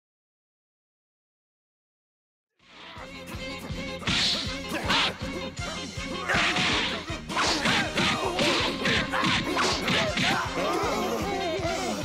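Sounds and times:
cartoon punch impacts: 6.3s - 10.5s.

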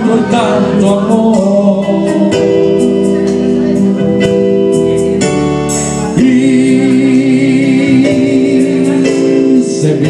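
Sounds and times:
sustained keyboard chords: 0.0s - 10.0s.

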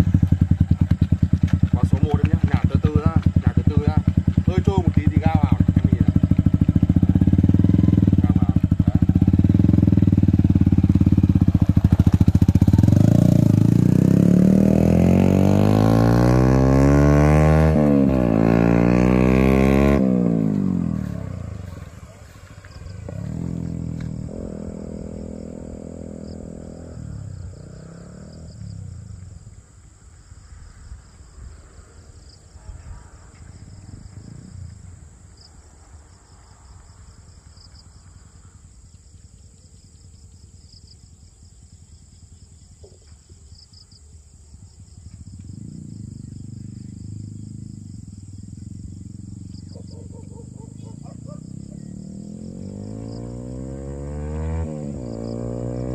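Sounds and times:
motorcycle engine revving: 0.0s - 29.6s, 44.6s - 55.9s
distant motorcycle engine: 0.0s - 55.9s.

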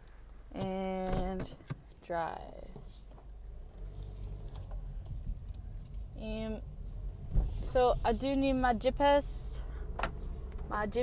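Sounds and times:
car interior rumble: 0.4s - 11.0s.

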